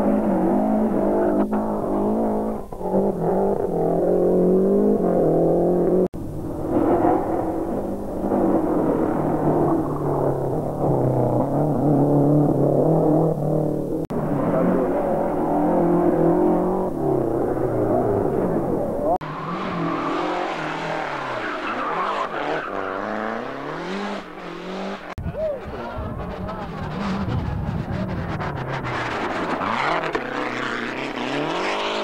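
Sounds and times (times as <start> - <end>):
rally car engines revving and shifting: 0.0 - 32.0.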